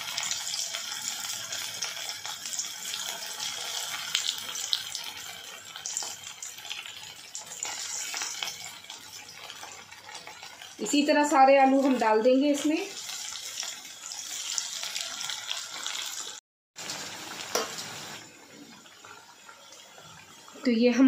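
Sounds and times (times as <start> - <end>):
potatoes deep-frying in oil: 0.0 - 21.0.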